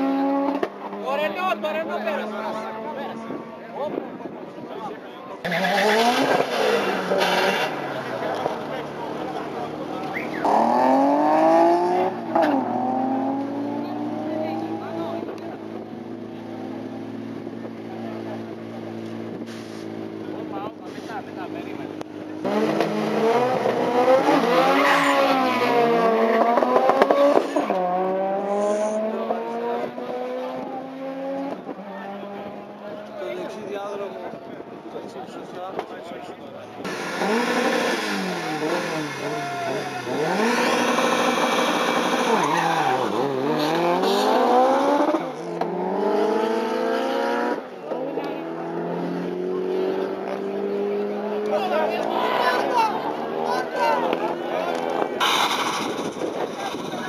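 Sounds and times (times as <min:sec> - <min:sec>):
car engine revving: 0:00.0 - 0:03.6, 0:05.4 - 0:34.1, 0:36.7 - 0:57.0
drag racing car accelerating: 0:00.0 - 0:34.4, 0:36.6 - 0:57.0.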